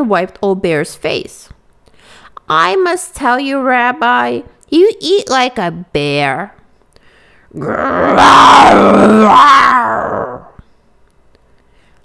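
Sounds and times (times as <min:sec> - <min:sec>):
woman imitating bear roar: 0:07.6 - 0:10.6.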